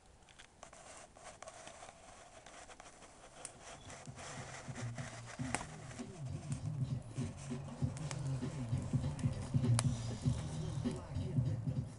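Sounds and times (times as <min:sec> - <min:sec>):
faint clicks and crackles: 0:00.0 - 0:11.0.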